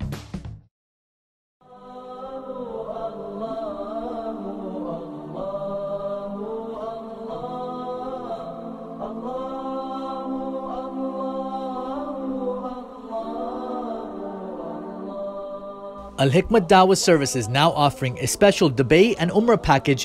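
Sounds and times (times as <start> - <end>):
voices chanting long notes: 1.7 - 20.0.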